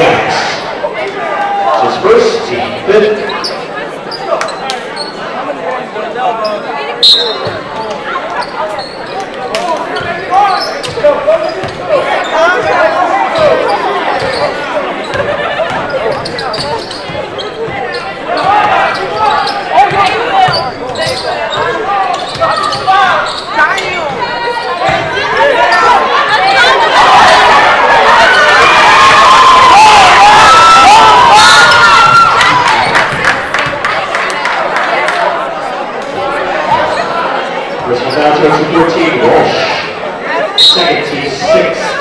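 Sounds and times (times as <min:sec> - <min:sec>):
spectators talking and calling out: 0:00.0 - 0:42.0.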